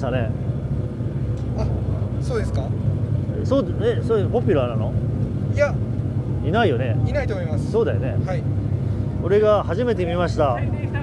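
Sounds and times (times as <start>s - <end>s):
car engine idling: 0.0s - 11.0s
people talking: 1.6s - 5.8s, 6.4s - 8.5s, 9.2s - 11.0s.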